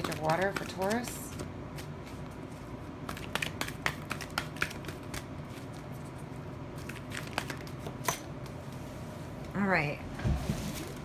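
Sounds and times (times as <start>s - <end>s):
cards shuffling: 0.0s - 6.2s, 6.8s - 8.2s.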